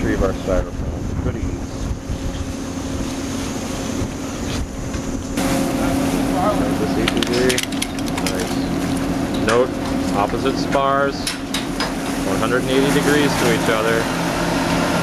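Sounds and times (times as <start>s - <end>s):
voices: 0.0s - 2.8s, 5.4s - 14.2s
wind on microphone: 0.0s - 7.3s
ship machinery hum: 0.0s - 15.0s.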